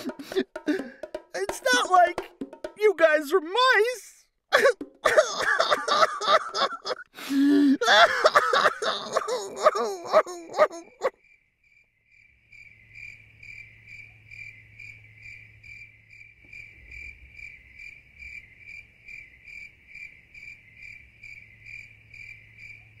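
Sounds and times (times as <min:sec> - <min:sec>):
crickets chirping: 0:04.6 - 0:23.0.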